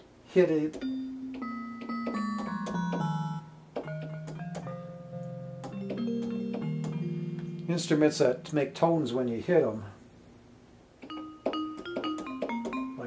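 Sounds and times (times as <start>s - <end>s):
digital keyboard single notes: 0.7s - 9.7s, 11.0s - 13.0s.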